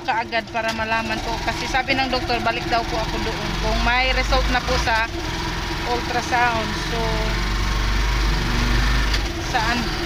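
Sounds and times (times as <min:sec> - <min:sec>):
small engine rumbling: 0:00.0 - 0:10.0.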